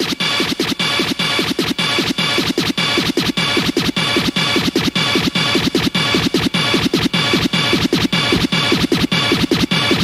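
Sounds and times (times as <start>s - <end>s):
electronic rave music: 0.0s - 10.0s
rapid record scratching: 0.0s - 10.0s.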